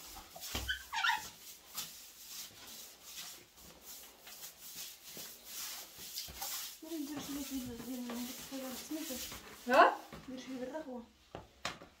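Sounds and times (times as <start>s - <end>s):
broom sweeping tiled floor: 0.0s - 11.9s.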